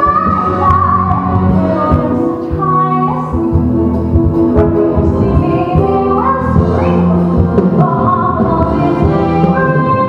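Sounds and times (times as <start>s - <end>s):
woman singing: 0.0s - 4.0s, 4.6s - 10.0s
orchestral accompaniment: 0.0s - 10.0s.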